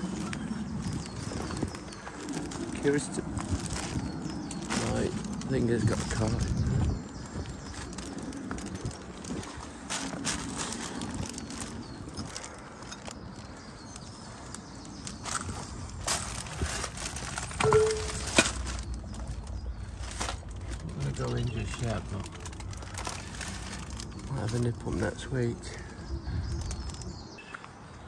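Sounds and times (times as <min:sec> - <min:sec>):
footsteps crunching on rubble: 0:00.0 - 0:25.8.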